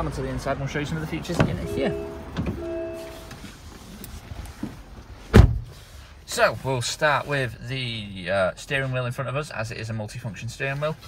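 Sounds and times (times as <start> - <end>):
car door thump: 1.3 - 3.0, 5.3 - 5.7
short electronic tone: 1.6 - 3.3.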